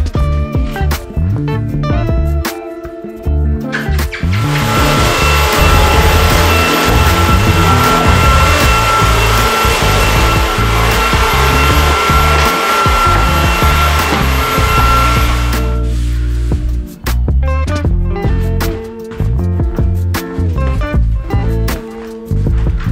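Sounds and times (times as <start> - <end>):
background music with a beat: 0.0 - 22.9
vacuum cleaner running: 4.3 - 16.6.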